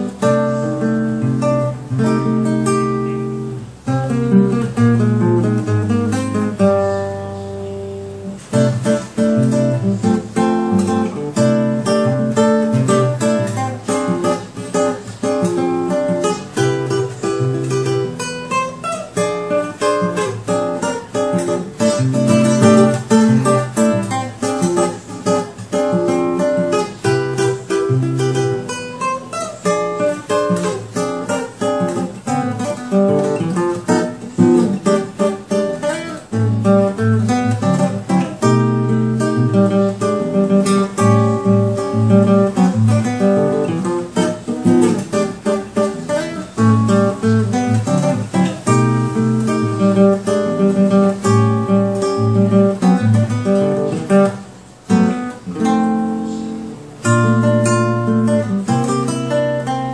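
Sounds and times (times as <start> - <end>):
fingerpicked classical guitar: 0.0 - 59.9.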